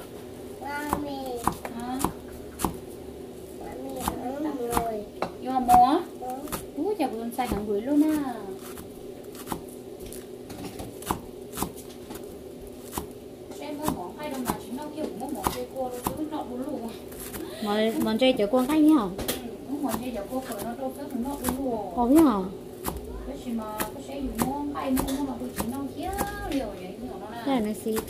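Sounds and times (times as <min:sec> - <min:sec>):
knife chopping on cutting board: 0:00.8 - 0:02.9, 0:04.0 - 0:05.9, 0:07.4 - 0:09.7, 0:10.9 - 0:11.9, 0:12.8 - 0:13.2, 0:13.8 - 0:16.3, 0:17.2 - 0:23.1, 0:23.7 - 0:26.5.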